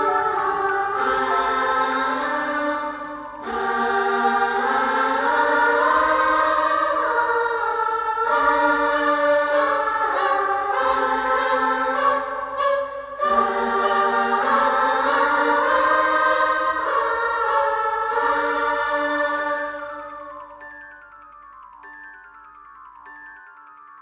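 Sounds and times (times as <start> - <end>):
choir-like voices holding chords: 0.0 - 22.5.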